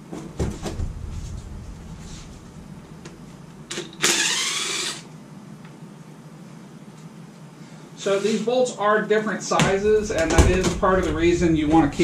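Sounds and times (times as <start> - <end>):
impact wrench running: 3.7 - 5.1.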